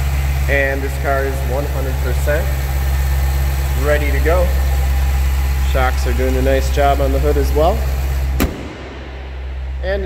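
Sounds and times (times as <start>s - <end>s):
car engine idling: 0.0s - 10.0s
hood slamming shut: 8.3s - 9.3s.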